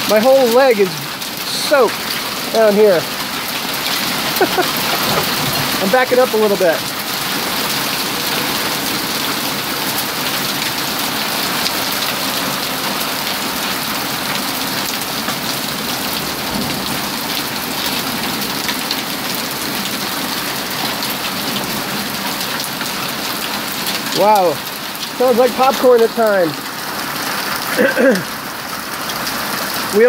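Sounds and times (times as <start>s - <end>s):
hailstones ticking: 0.0s - 30.0s
heavy rain on wooden deck: 0.0s - 30.0s.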